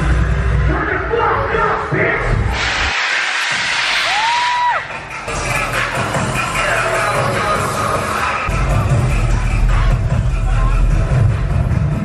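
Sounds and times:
heavy bass: 0:00.0 - 0:12.0
electronic dance music: 0:00.1 - 0:12.0.

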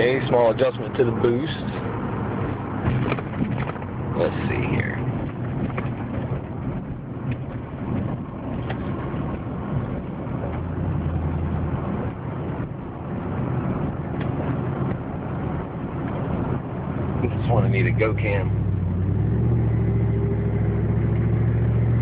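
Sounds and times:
car engine drone from cabin: 0:00.0 - 0:22.0
road noise: 0:00.0 - 0:22.0.

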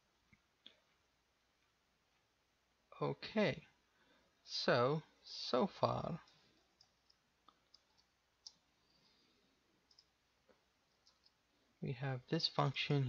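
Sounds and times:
person speaking: 0:02.9 - 0:03.8, 0:04.4 - 0:06.6, 0:11.8 - 0:13.0.

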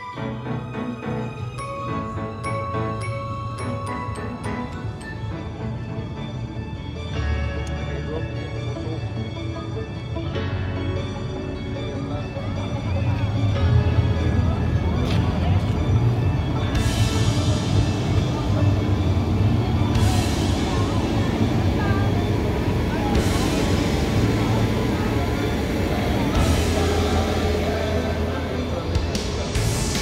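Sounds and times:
music playing: 0:00.0 - 0:30.0
tractor diesel engine rumble: 0:03.8 - 0:30.0.

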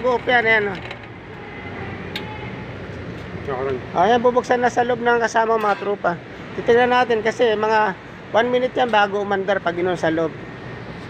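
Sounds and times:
rushing background noise: 0:00.0 - 0:11.0.

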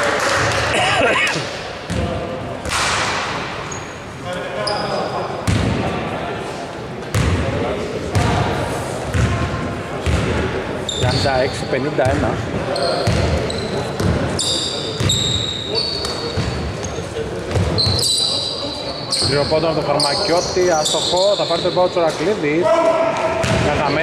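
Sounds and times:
players' voices: 0:00.0 - 0:24.0.

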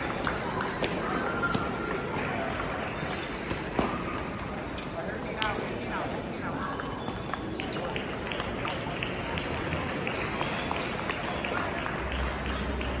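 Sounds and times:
chatter of busy hall: 0:00.0 - 0:13.0.

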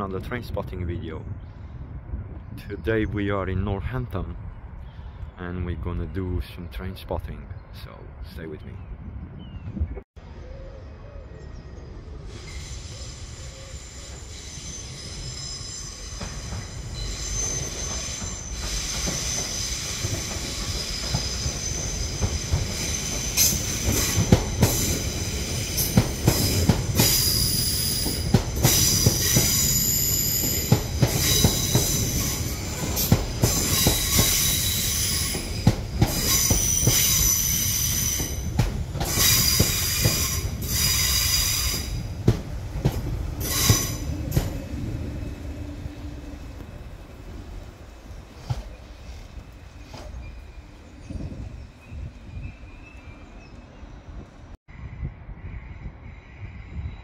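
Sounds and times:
low train rumble: 0:00.0 - 0:57.0
train wheels squealing: 0:12.0 - 0:42.1, 0:43.4 - 0:45.4, 0:48.4 - 0:57.0.

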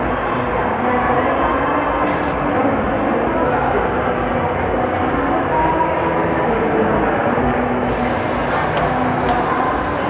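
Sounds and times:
echoing mall noise: 0:00.0 - 0:10.0
indistinct voices: 0:00.0 - 0:10.0.

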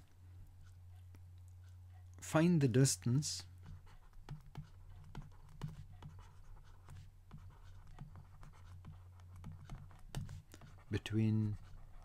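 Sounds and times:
stylus scratching on tablet: 0:02.7 - 0:12.0.

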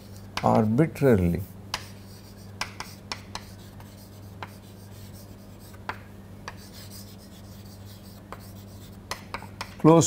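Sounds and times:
chalk tapping on board: 0:00.0 - 0:00.7, 0:01.7 - 0:09.9
chalk scratching on chalkboard: 0:00.0 - 0:09.8
steady low hum: 0:00.0 - 0:10.0.

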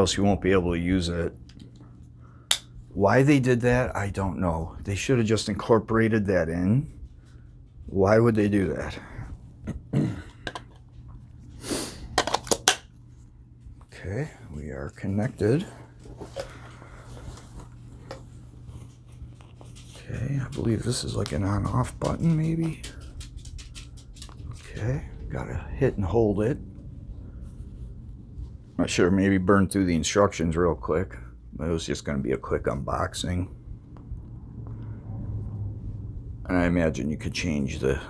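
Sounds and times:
low steady rumble: 0:00.0 - 0:38.0
steady low hum: 0:00.0 - 0:38.0
fabric rustling: 0:15.6 - 0:22.4.

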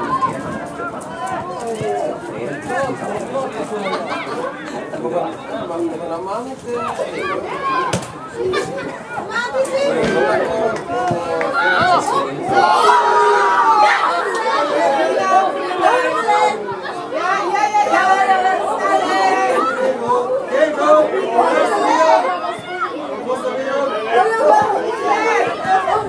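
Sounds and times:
overlapping voices chattering: 0:00.0 - 0:26.0.

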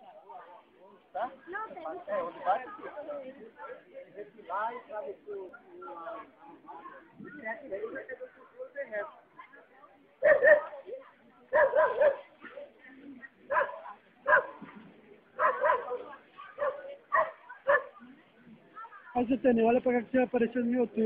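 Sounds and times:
dog barking: 0:10.2 - 0:10.8, 0:11.5 - 0:12.3, 0:13.5 - 0:14.6, 0:15.4 - 0:18.0.

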